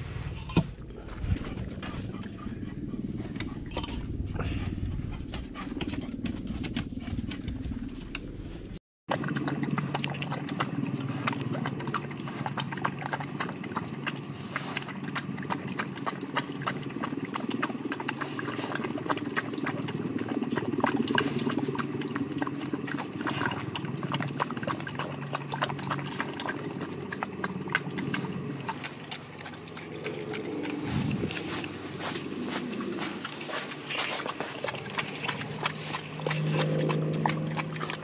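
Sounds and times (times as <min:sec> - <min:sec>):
low steady hum: 0:00.0 - 0:38.0
dog chewing and lapping food: 0:00.5 - 0:08.3, 0:09.1 - 0:38.0
teeth clicking on metal bowl: 0:09.1 - 0:30.8, 0:34.2 - 0:38.0.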